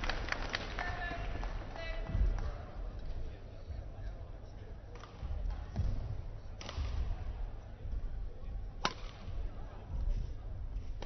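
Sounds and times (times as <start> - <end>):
rackets striking shuttlecock: 6.6 - 7.2, 8.8 - 9.3.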